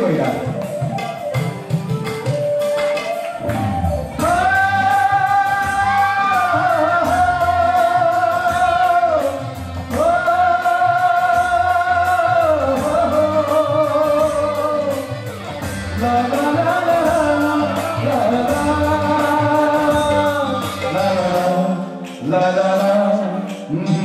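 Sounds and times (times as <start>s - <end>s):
backing music: 0.0s - 24.0s
man singing through microphone: 4.1s - 24.0s.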